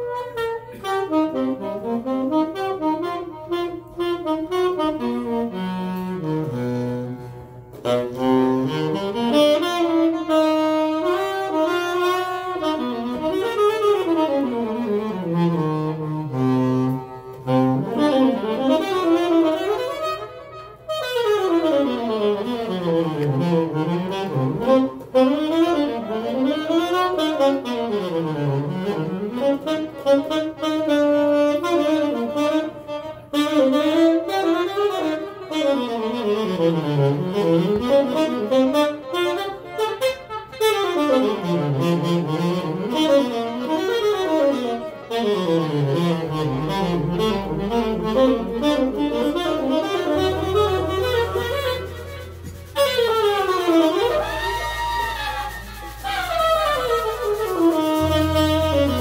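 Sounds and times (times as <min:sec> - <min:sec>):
saxophone soloing: 0:00.0 - 0:59.0
electric bass notes: 0:21.5 - 0:34.9, 0:41.0 - 0:59.0.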